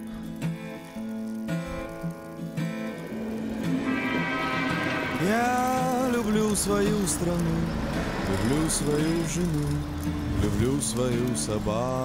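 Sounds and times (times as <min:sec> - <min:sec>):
instrumental backing music: 0:00.0 - 0:12.0
man singing pop song: 0:05.2 - 0:12.0.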